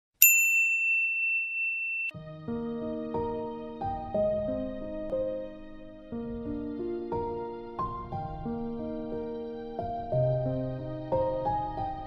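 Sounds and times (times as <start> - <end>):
bright bell ding: 0.2 - 2.2.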